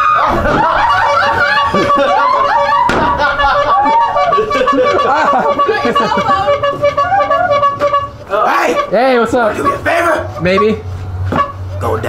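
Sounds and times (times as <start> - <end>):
laughter: 0.0 - 7.5
excited voices: 0.0 - 10.7
steady high tone: 0.0 - 12.0
sharp thump: 2.8 - 3.2.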